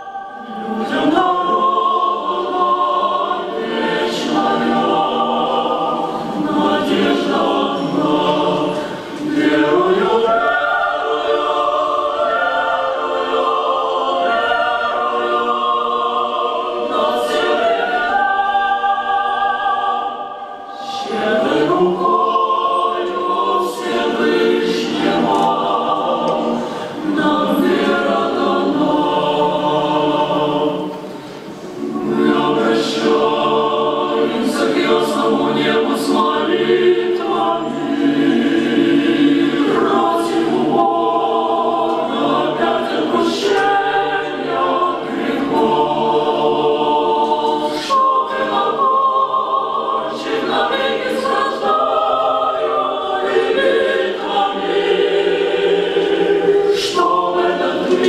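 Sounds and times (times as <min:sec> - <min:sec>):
choir singing a cappella: 0:00.0 - 0:58.0.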